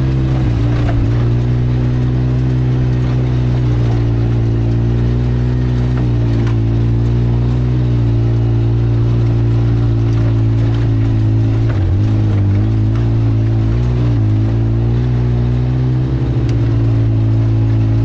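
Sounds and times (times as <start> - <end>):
utility vehicle engine running: 0.0 - 18.0.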